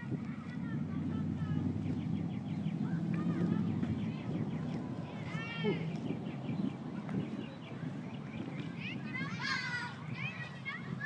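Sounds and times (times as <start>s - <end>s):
low outdoor rumble: 0.0s - 11.0s
distant children shouting: 2.8s - 6.0s, 8.7s - 11.0s.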